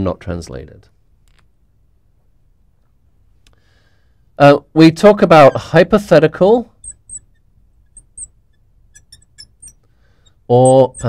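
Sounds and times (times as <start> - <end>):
marker squeaking on glass: 5.3 - 6.0, 6.7 - 11.0.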